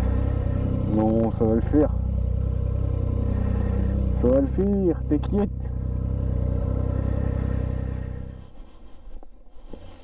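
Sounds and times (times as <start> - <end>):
motorcycle engine running: 0.0 - 8.8.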